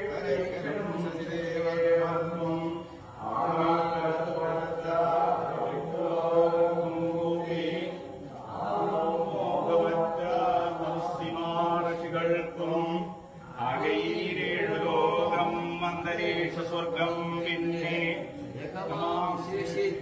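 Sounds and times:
men singing in unison: 0:00.0 - 0:20.0.

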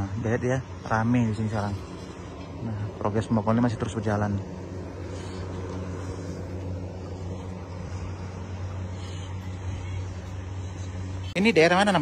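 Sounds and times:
engine humming: 0:00.0 - 0:12.0.

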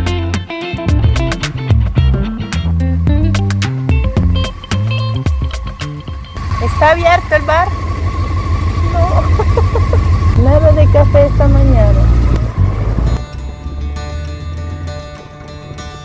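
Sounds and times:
background music: 0:00.0 - 0:07.7, 0:10.4 - 0:16.0
motorcycle engine running: 0:00.9 - 0:16.0
woman exclaiming: 0:08.9 - 0:10.8.

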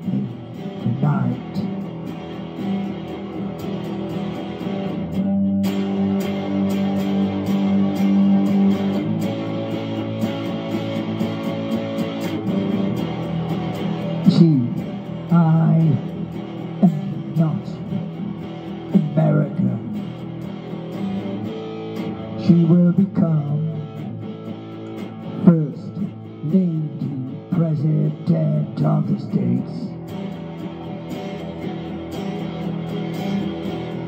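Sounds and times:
man's voice: 0:00.0 - 0:01.8, 0:14.2 - 0:18.2, 0:18.8 - 0:20.1, 0:22.4 - 0:24.0, 0:25.3 - 0:30.0
electric guitar strummed chords: 0:00.0 - 0:34.0.

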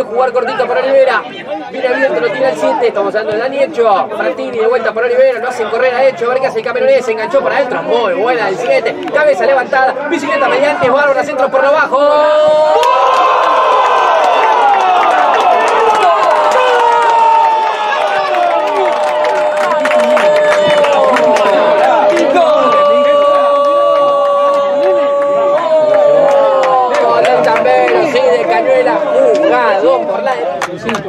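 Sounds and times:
crowd cheering: 0:11.9 - 0:31.0.

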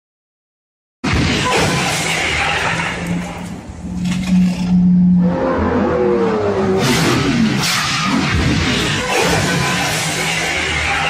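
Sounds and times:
car engine revving: 0:01.4 - 0:11.0.

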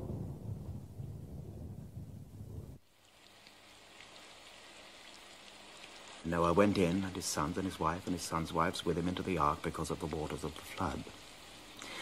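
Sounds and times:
low rumble of thunder: 0:00.0 - 0:02.8
rain patter: 0:00.0 - 0:12.0.

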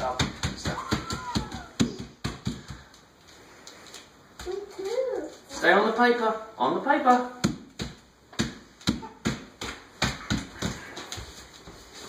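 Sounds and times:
bare feet slapping on paper: 0:00.0 - 0:06.1, 0:07.0 - 0:12.0.

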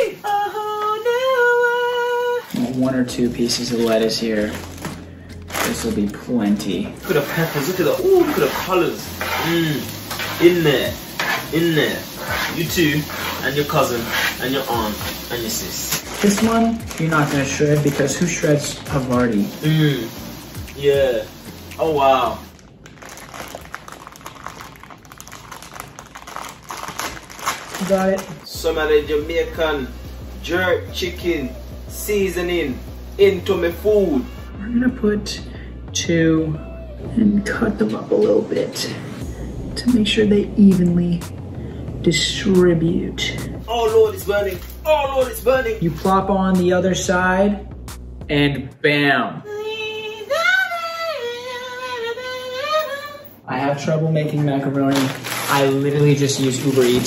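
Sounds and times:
plastic packaging crinkling: 0:02.3 - 0:08.7, 0:15.1 - 0:19.8, 0:22.1 - 0:28.6, 0:54.7 - 0:57.0.

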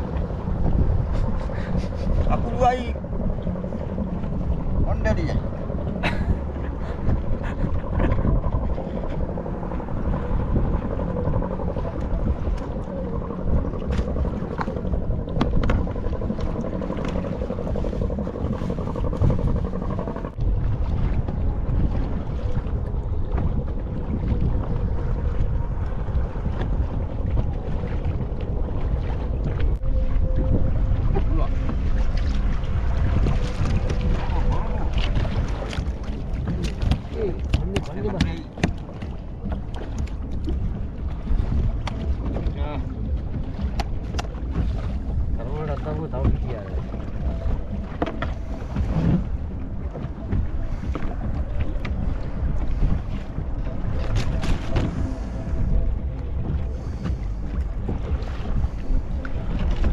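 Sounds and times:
water splashing against hull: 0:00.0 - 0:59.9
wind buffeting microphone: 0:00.0 - 0:59.9.

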